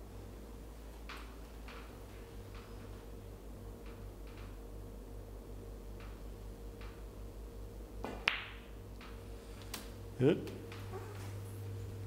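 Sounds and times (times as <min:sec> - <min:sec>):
steady low hum: 0:00.0 - 0:12.0
cue striking snooker ball: 0:08.0 - 0:08.7.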